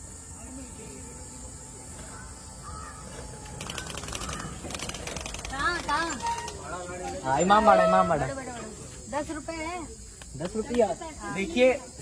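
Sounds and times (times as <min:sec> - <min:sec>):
low outdoor background: 0:00.0 - 0:12.0
bird calling: 0:00.3 - 0:08.4
rapid clicking rattle: 0:03.4 - 0:06.8.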